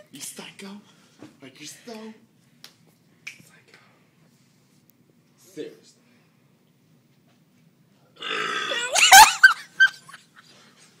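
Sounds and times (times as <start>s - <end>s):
person burping: 8.2s - 9.0s.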